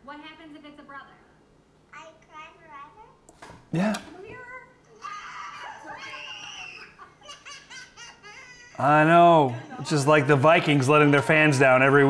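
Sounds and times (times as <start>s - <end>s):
girl crying high-pitched: 4.9s - 8.9s.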